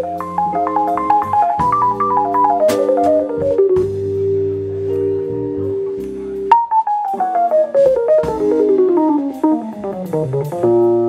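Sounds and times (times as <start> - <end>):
drum kit: 0.0 - 11.0
electric bass: 0.0 - 11.0
stage piano runs: 0.0 - 11.0
sharp drum hit: 1.3 - 4.2, 6.5 - 11.0.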